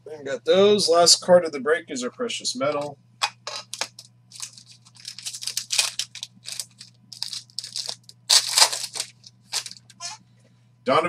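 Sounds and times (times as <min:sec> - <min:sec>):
faint low hum: 0:00.0 - 0:11.0
plastic wrapping crinkling and tearing: 0:03.7 - 0:10.0.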